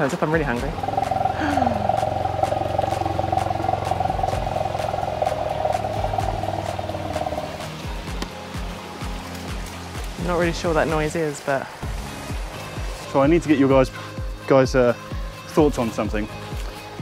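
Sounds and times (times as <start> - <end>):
pulsing drone: 0.0 - 8.1.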